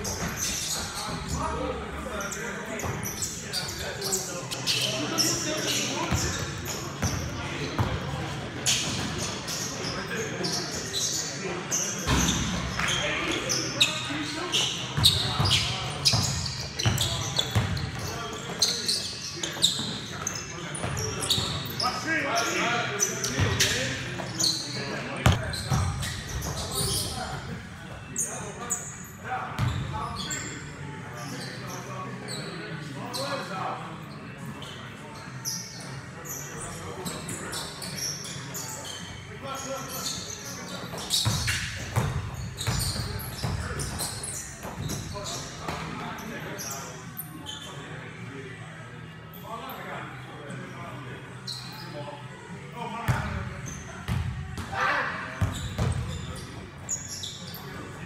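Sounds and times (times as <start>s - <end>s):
voices calling out in a hall: 0.0s - 58.0s.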